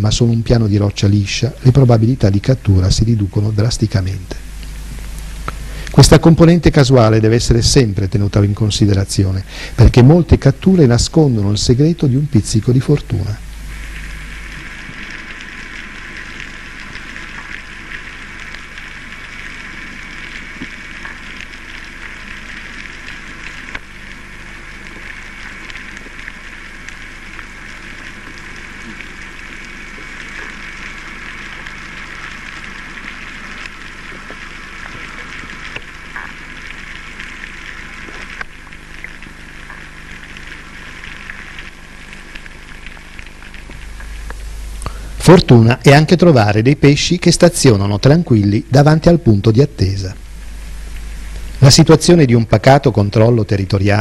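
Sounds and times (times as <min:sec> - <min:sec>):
underwater hiss: 0:04.4 - 0:06.0, 0:09.4 - 0:09.8, 0:13.2 - 0:45.2
small underwater clicks: 0:13.0 - 0:45.0.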